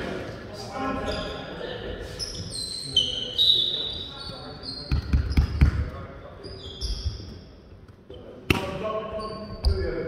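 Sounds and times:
sneakers squeaking on floor: 0.8 - 10.0.

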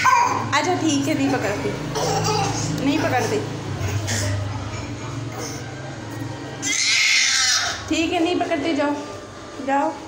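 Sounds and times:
baby squealing: 0.0 - 0.4, 6.6 - 7.8.

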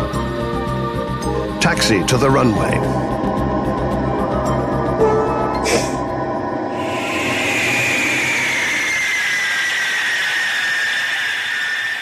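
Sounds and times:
jet engines whining and hissing: 2.7 - 12.0.

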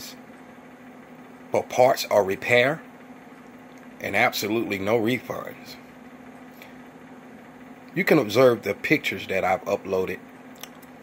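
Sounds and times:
computer fan humming: 0.0 - 11.0.

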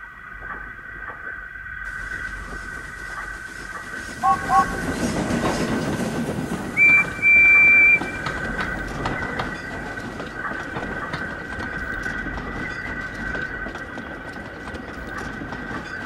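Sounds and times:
train rumbling past: 0.0 - 16.0
wheels clicking over rail joints: 0.0 - 16.0
steam locomotive whistle: 4.2 - 5.0, 6.8 - 8.4.

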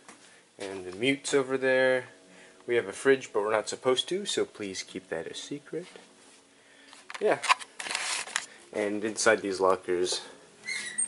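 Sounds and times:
faint steady hum: 0.0 - 10.7.

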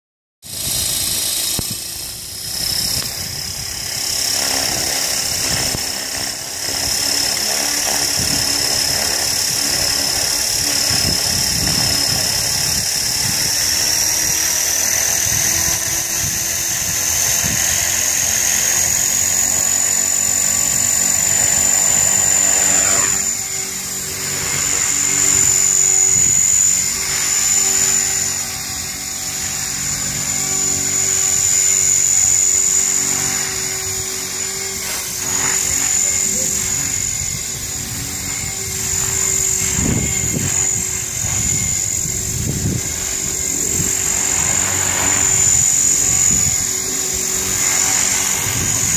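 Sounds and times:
electric motor whine: 0.4 - 48.9
rotor blades whirring: 0.4 - 48.9.

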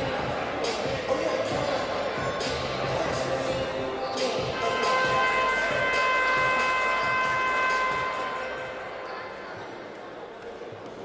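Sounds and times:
voices in gym: 0.0 - 11.0
gym horn buzzing tone: 4.5 - 9.1.

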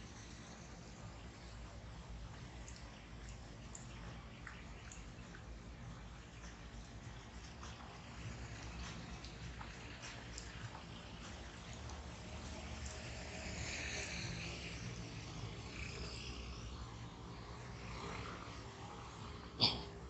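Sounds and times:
low rumble of traffic: 0.0 - 20.0
vehicle passing by: 7.0 - 20.0.

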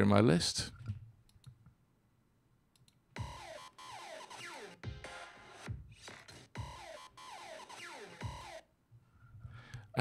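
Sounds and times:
electronic music loop: 3.2 - 8.7.

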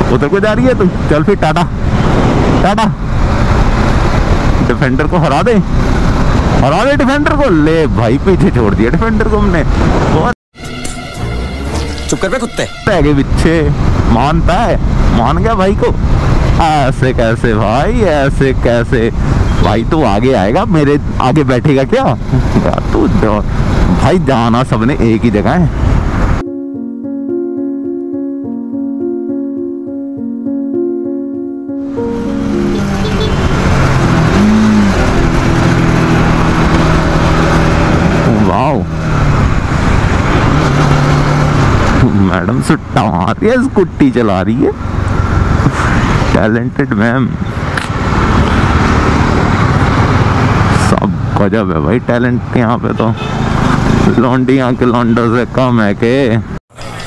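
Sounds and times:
road and wind noise: 0.0 - 57.0
motorcycle engine hum: 22.2 - 46.4, 47.4 - 52.6
short tone: 26.4 - 33.7
wavering pitched sound: 26.4 - 36.2
motorcycle engine running: 32.6 - 42.0.

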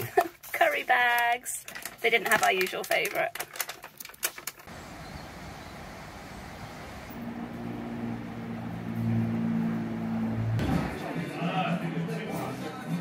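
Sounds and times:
outdoor background noise: 0.0 - 11.0
engine humming: 4.7 - 11.1.

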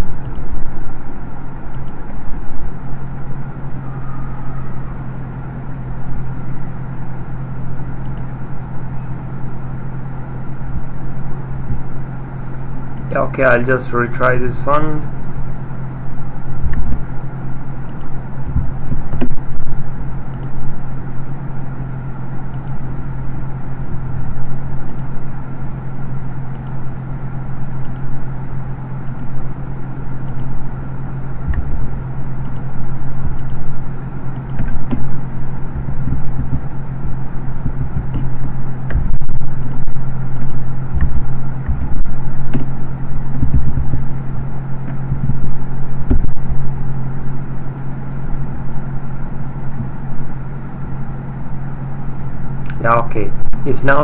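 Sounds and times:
steady low hum: 0.0 - 54.0
uneven low rumble: 31.4 - 32.0, 33.0 - 46.9.

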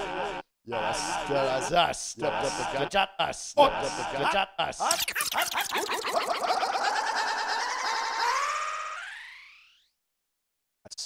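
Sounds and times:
man's voice with vocal effects: 0.0 - 5.1.

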